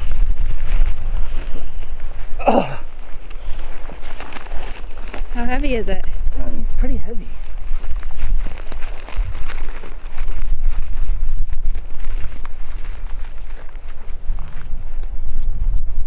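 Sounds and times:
footsteps crunching through dry grass: 0.0 - 16.0
low rumble on microphone: 0.0 - 16.0.

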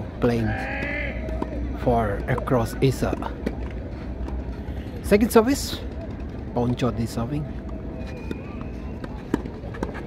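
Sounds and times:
tennis ball struck by racquets: 0.6 - 1.7, 8.2 - 10.0.

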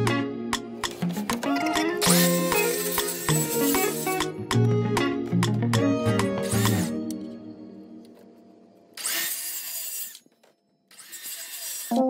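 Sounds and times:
circular saw cutting: 2.0 - 4.4, 6.3 - 7.0, 9.0 - 10.3, 10.9 - 12.0.

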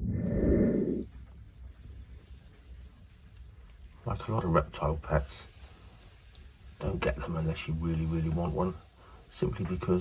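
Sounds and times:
low rumbling noise burst: 0.0 - 1.6
steady hiss: 0.8 - 10.0.

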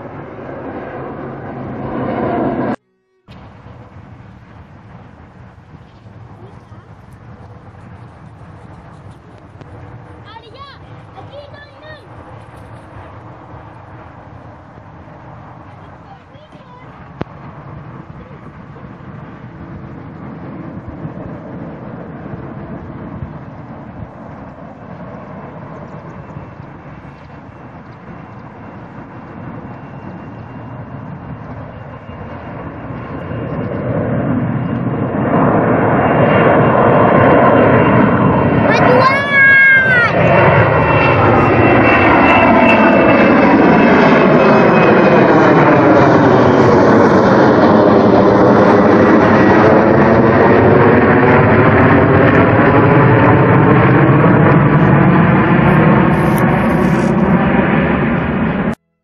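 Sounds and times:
jet airliner engine roar: 0.0 - 58.9.

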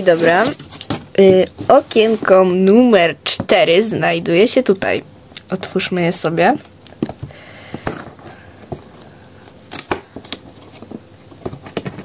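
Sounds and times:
cardboard clicks and scrapes: 0.0 - 2.4, 9.7 - 12.0.

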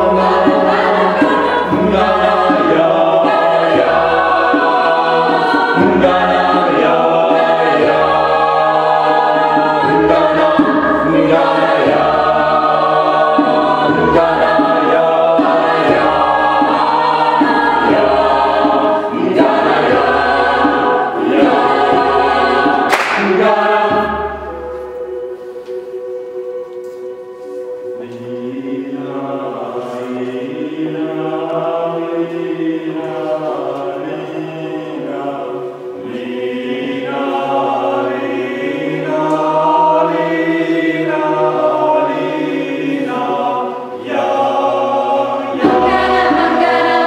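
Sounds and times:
choir singing a cappella: 0.0 - 47.0.

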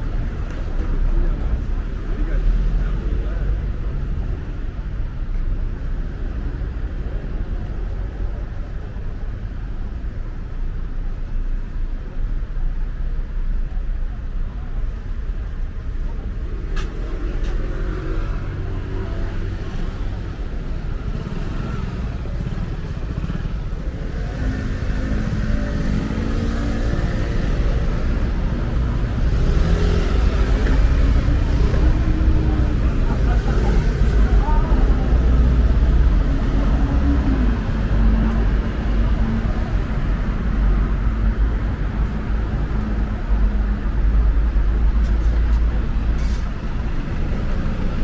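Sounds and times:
vehicle engines passing: 0.0 - 12.5, 14.6 - 48.0
low traffic rumble: 0.0 - 48.0
voices of passers-by: 0.0 - 48.0.

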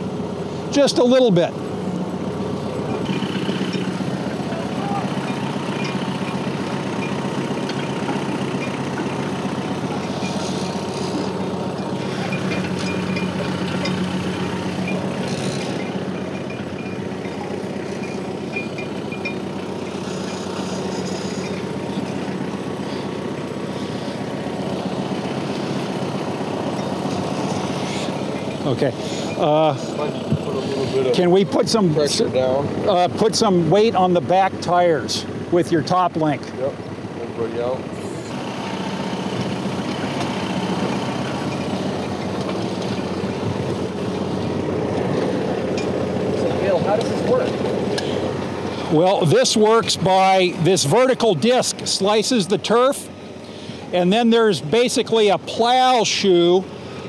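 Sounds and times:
tractor engine running: 0.0 - 57.0.

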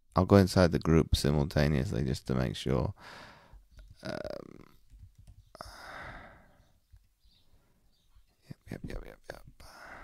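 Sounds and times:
breathy sigh: 3.0 - 3.6, 5.6 - 6.7, 9.6 - 10.0
man breathing close to microphone: 3.0 - 3.7, 5.6 - 6.8, 9.6 - 10.0
man murmuring: 4.0 - 4.8.

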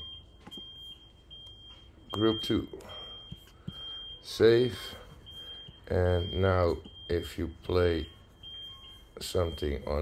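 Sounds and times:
high-pitched electronic beeps: 5.2 - 10.0.

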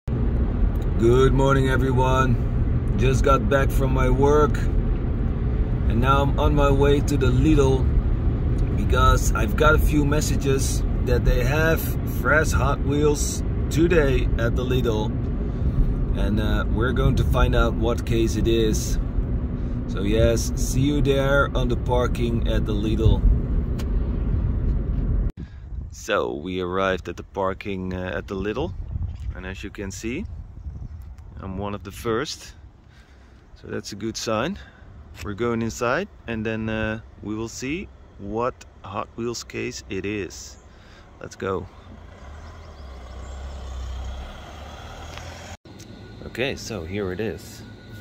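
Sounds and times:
car road and engine rumble: 0.0 - 48.0
outdoor background: 0.0 - 48.0.

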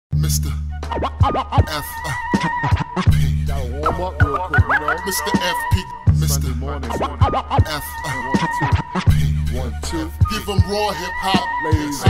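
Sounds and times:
hip hop beat deep bass: 0.1 - 12.0
turntable scratching: 3.8 - 5.7, 6.3 - 9.0.

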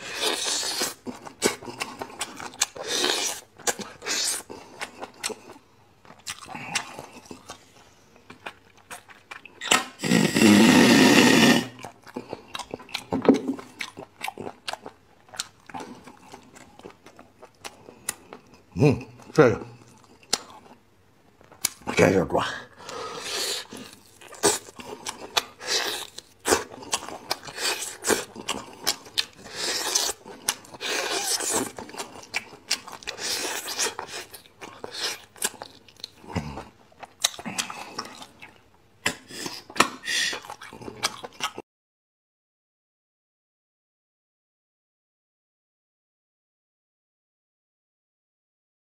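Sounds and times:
chewing with wet mouth clicks: 0.8 - 9.9, 11.8 - 18.7, 19.8 - 20.8, 21.4 - 21.9, 23.7 - 41.6
loud slurp: 9.6 - 11.8.

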